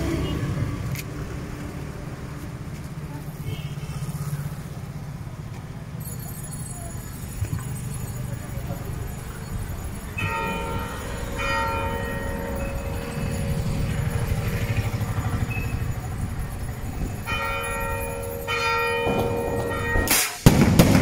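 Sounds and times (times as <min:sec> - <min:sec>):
church bell ringing: 0:06.0 - 0:20.2
low uneven rumble: 0:07.2 - 0:20.1.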